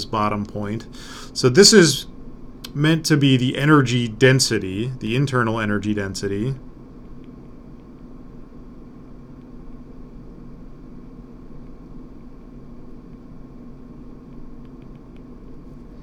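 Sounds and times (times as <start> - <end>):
electrical hum and fan hiss: 0.0 - 16.0.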